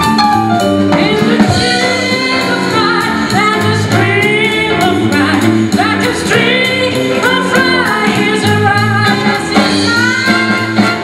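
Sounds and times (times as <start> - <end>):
live band playing: 0.0 - 11.0
woman singing blues: 0.9 - 11.0.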